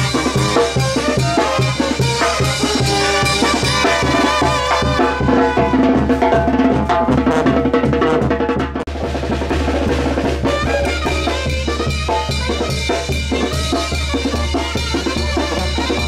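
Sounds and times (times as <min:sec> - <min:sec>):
bass drum: 0:00.0 - 0:16.0
brass band playing: 0:00.0 - 0:16.0
snare drum: 0:00.0 - 0:16.0
tuba: 0:00.0 - 0:16.0.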